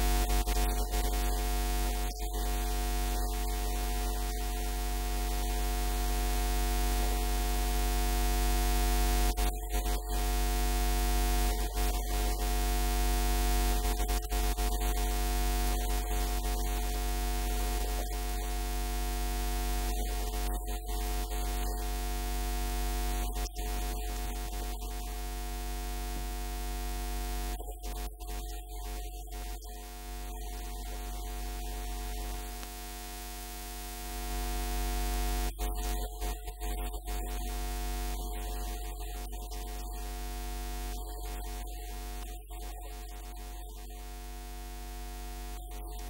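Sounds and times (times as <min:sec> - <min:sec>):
electrical mains hum: 0:00.0 - 0:09.4, 0:20.8 - 0:27.6, 0:29.8 - 0:35.6
static hiss: 0:00.0 - 0:36.1, 0:39.6 - 0:46.0.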